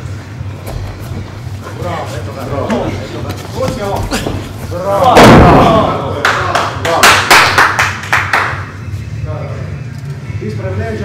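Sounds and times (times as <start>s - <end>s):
hand clapping: 6.2s - 8.8s.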